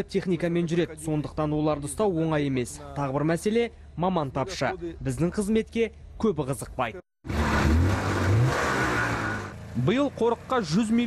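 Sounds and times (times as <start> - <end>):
vehicle engine revving: 7.2 - 10.6.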